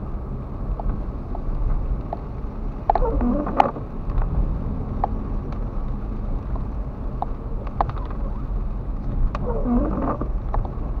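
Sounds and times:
raindrops ticking on windscreen: 0.0 - 11.0
road and engine rumble: 0.0 - 11.0.

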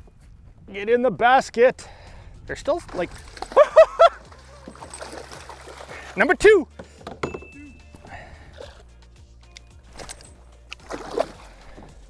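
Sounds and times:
background music: 0.7 - 12.0
water sloshing: 2.8 - 9.0, 9.8 - 12.0.

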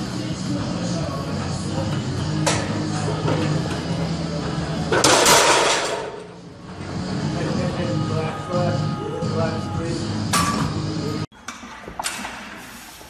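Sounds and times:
barbell crashing in rack: 5.0 - 6.1.

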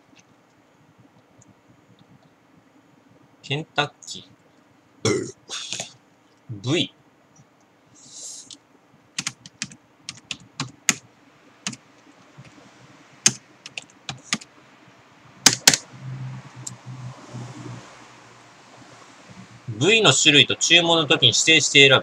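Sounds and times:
computer keyboard typing: 9.2 - 11.0, 13.2 - 14.5, 15.4 - 15.8.

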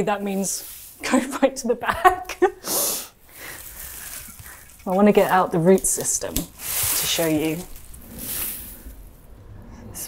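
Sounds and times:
rice plant leaves rustling: 0.0 - 2.0, 3.2 - 9.3.

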